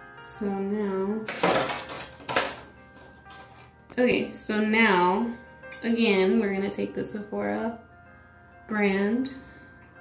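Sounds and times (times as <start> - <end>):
makeup bottles clinking and rattling: 1.3 - 3.7.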